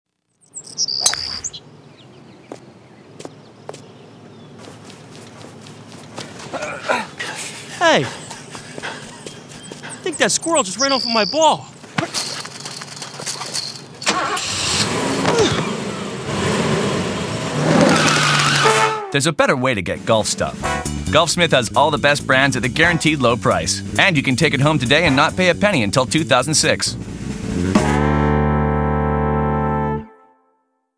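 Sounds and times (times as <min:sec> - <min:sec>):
low outdoor background: 0:00.1 - 0:30.0
bird chirping: 0:00.2 - 0:14.0
clattering: 0:12.0 - 0:14.4
car engine starting and running: 0:13.6 - 0:18.8, 0:23.7 - 0:28.8.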